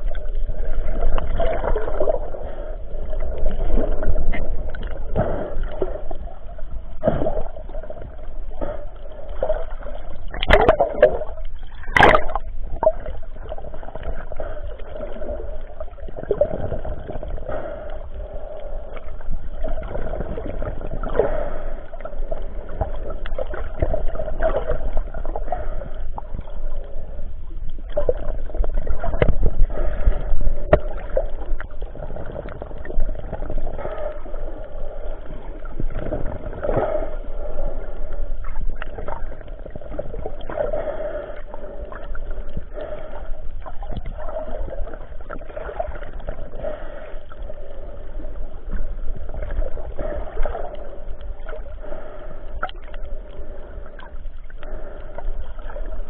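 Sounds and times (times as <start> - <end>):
water sloshing and gurgling: 0.0 - 56.0.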